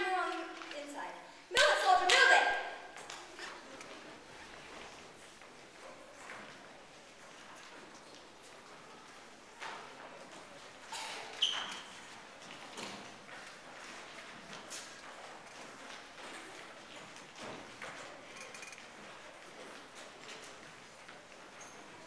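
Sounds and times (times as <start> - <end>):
brief high squeak: 10.9 - 12.0.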